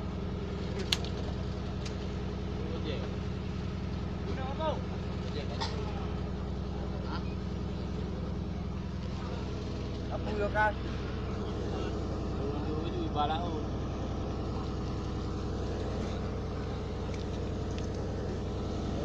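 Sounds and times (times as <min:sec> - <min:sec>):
boat engine running: 0:00.0 - 0:19.0.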